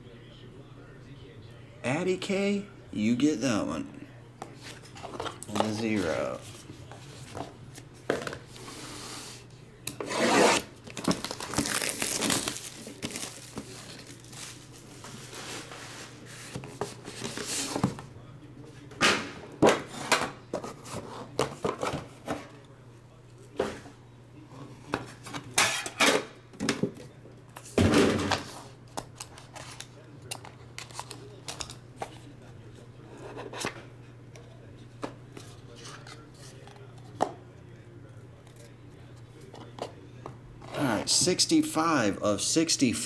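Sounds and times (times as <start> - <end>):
plastic wrap tearing and crinkling: 10.6 - 15.5.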